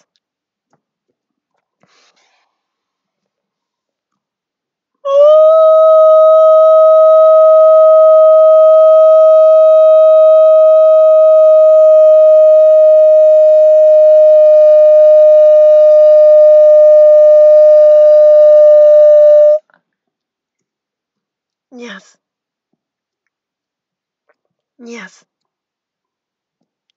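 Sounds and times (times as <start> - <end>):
man holding long vocal tone: 5.1 - 19.6.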